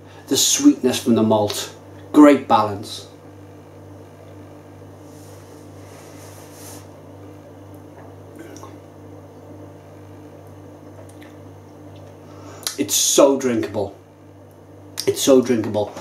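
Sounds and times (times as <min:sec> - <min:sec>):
steady low hum: 0:00.0 - 0:16.0
faint mouth sounds: 0:08.3 - 0:08.8.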